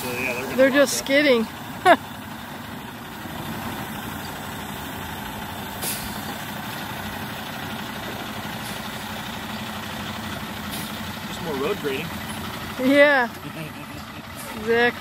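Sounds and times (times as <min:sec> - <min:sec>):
diesel truck engine running: 0:00.0 - 0:15.0
air brake hiss: 0:05.7 - 0:06.3.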